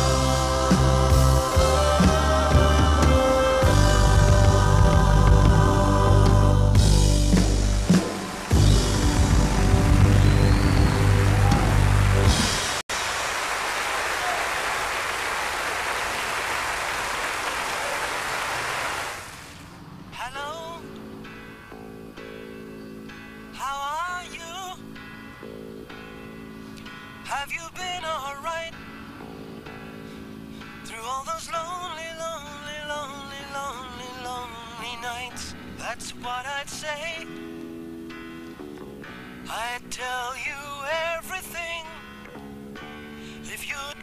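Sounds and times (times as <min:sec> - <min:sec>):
live band playing: 0:00.0 - 0:12.8
audience applauding: 0:07.8 - 0:19.7.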